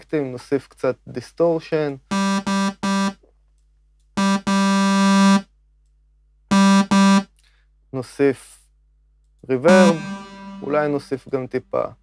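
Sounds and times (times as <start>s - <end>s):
distorted synth notes: 9.7s - 11.0s.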